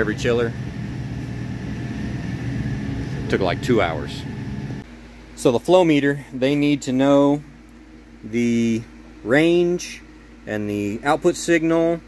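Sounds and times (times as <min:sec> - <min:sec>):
faint high whine: 0:00.0 - 0:07.5
low machinery hum: 0:00.0 - 0:12.0.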